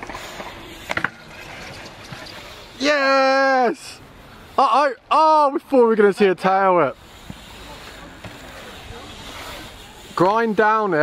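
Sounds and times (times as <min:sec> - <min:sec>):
bike tyres rolling on concrete: 0:00.0 - 0:11.0.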